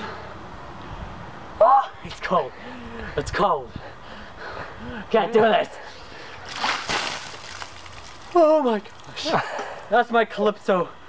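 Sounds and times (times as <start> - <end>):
water pouring and splattering: 6.4 - 9.2.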